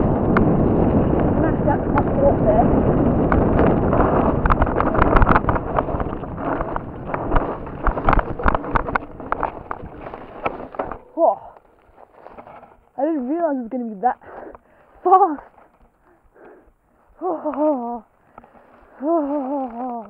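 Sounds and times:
bike tyres rumbling on dirt: 0.0s - 20.0s
bike knocking on rocks: 2.8s - 13.0s.

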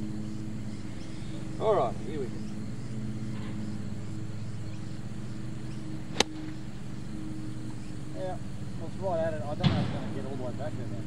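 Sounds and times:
low mechanical hum: 0.0s - 11.0s
golf club striking ball: 6.1s - 6.6s.

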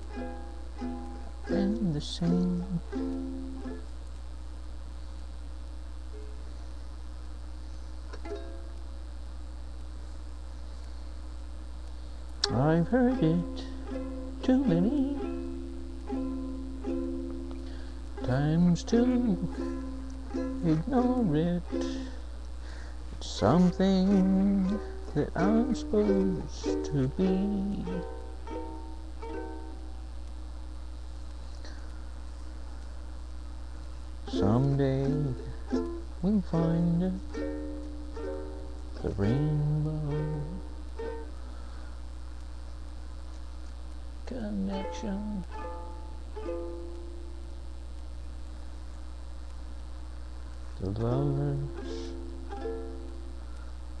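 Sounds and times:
ukulele chord strummed: 0.0s - 4.0s, 8.1s - 8.9s, 12.4s - 30.1s, 34.2s - 41.8s, 44.5s - 47.5s, 50.9s - 53.6s
steady low hum: 0.0s - 54.0s.

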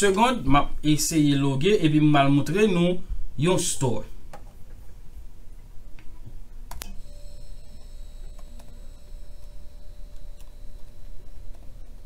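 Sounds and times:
low room hum: 0.0s - 12.0s
high-pitched electronic whine: 6.9s - 12.0s.

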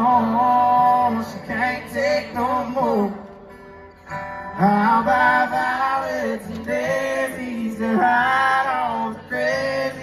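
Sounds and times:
strummed acoustic guitars: 0.0s - 10.0s.

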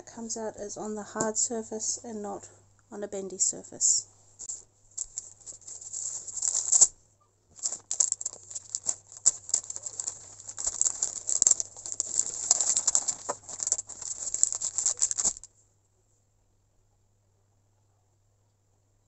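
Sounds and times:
plastic pouch crackling in laminator: 4.4s - 6.9s, 7.5s - 15.5s.

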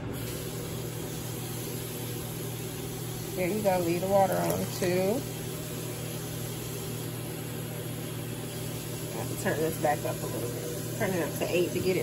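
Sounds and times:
constant low hum: 0.0s - 12.0s
pot bubbling on stove: 0.0s - 12.0s.

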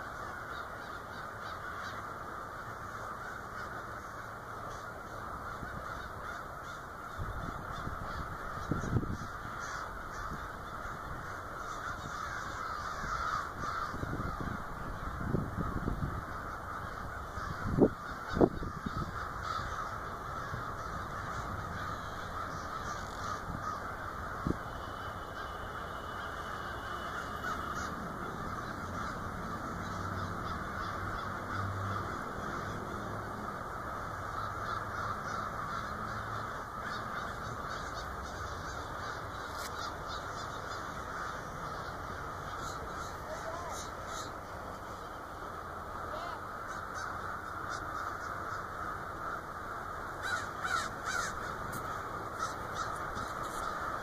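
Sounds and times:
crows cawing: 0.0s - 54.0s.

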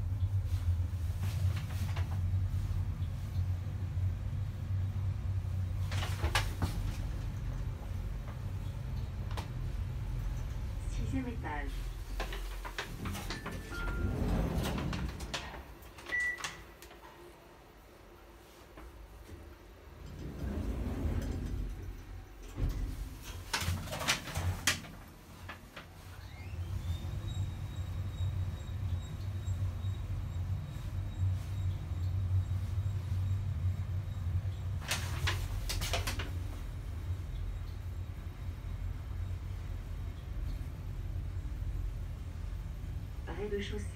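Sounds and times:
elevator low rumble: 0.0s - 43.9s.

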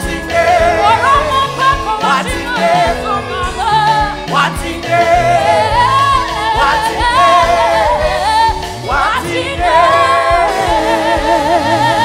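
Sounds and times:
drum hits: 0.0s - 11.6s
gospel band with bass: 0.0s - 12.0s
high voice singing with vibrato: 0.0s - 12.0s.

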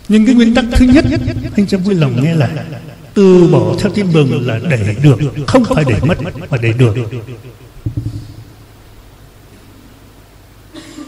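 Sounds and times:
faint room hum and hiss: 0.0s - 11.0s
man speaking: 0.1s - 8.1s.

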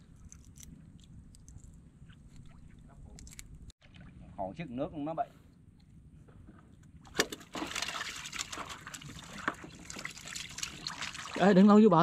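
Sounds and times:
water splashing and trickling: 7.1s - 12.0s.

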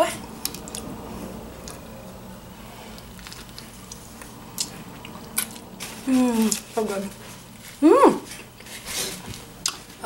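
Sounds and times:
low steady hum: 0.0s - 10.0s
person chewing sandwich: 0.3s - 9.9s.

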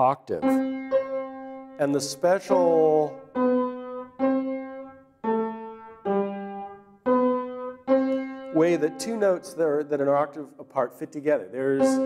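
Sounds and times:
piano octaves ringing: 0.0s - 12.0s.

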